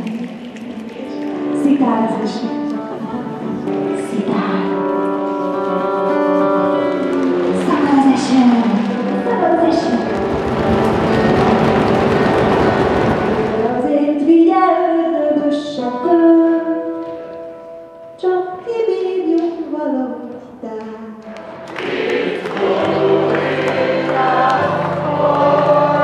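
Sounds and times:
hands rubbing and clapping: 0.0 - 1.4, 5.4 - 13.7, 21.2 - 25.8
voices singing: 21.4 - 26.0.

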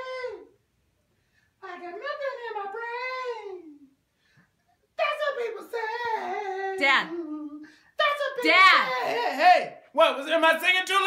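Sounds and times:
man singing in falsetto: 0.0 - 0.6, 1.6 - 4.0, 5.0 - 9.9.

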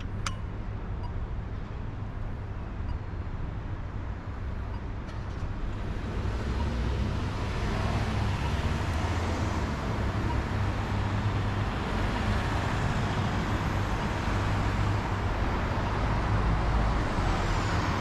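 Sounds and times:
bus driving past: 5.1 - 18.0.

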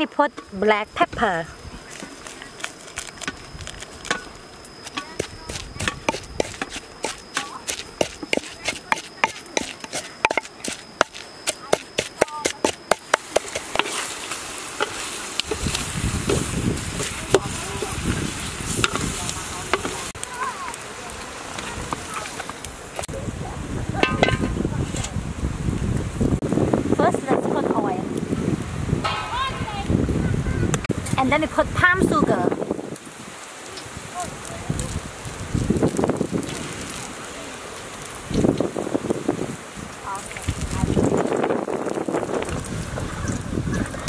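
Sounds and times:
high insect drone: 0.0 - 17.0
wooden pestle pounding in mortar: 5.2 - 13.8
low rushing noise: 29.0 - 31.2.

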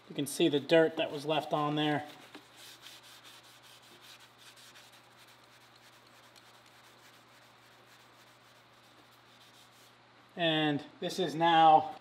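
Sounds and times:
cloth rubbing on steel: 0.7 - 10.1.

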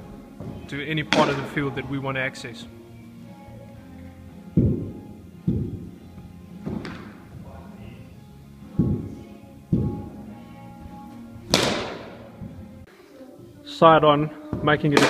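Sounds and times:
soft background music: 0.0 - 15.0.

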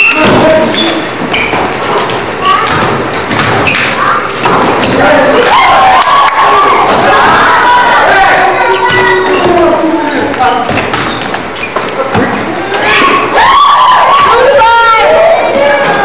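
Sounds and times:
basketball bouncing: 0.1 - 5.0, 8.8 - 9.7, 10.5 - 13.1
crowd shouting: 4.9 - 10.2, 12.4 - 16.0.

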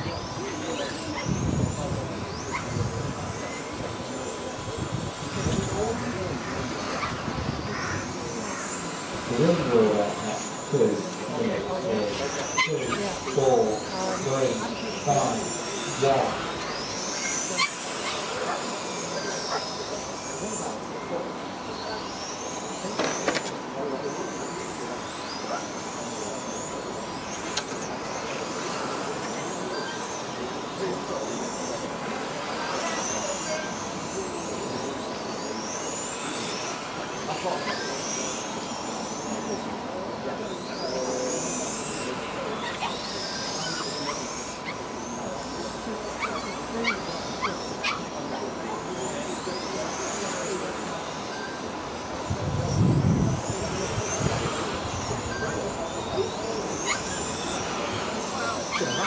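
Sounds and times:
rc car motors whining: 0.0 - 59.0.

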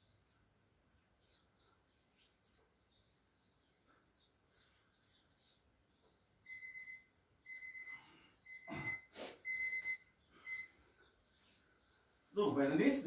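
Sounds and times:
electronic timer beeping: 6.5 - 10.8.

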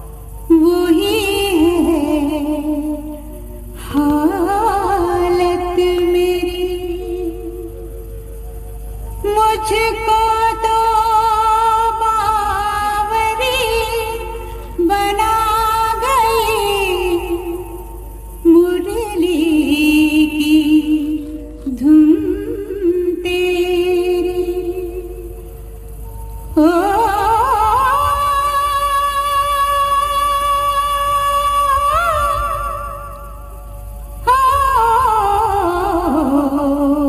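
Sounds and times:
woman singing devotional song: 0.0 - 7.8, 9.2 - 25.4, 26.5 - 33.3, 34.2 - 37.0
steady held tone: 0.0 - 37.0.

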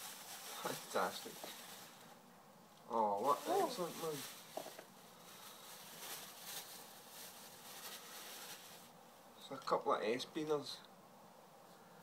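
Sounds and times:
plastic bag crinkling: 0.0 - 2.2, 3.2 - 9.0.

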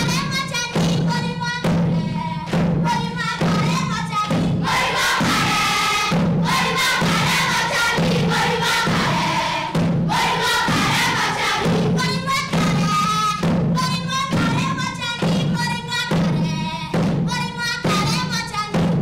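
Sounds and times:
thudding beat: 0.0 - 19.0
children's choir singing: 2.0 - 13.5.

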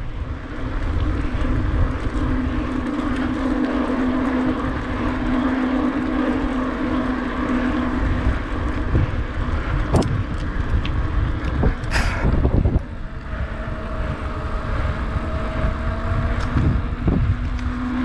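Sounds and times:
bicycle tyre rumble: 0.0 - 18.0
steady low hum: 0.0 - 18.0
wind on microphone: 0.0 - 18.0.

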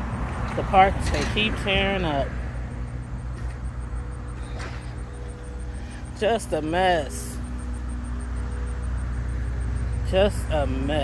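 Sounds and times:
engine rumble: 0.0 - 11.0.

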